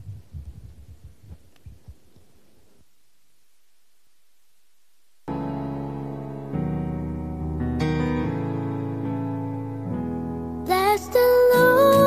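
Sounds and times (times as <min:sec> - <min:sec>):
muffled thumps of people moving: 0:00.0 - 0:02.3.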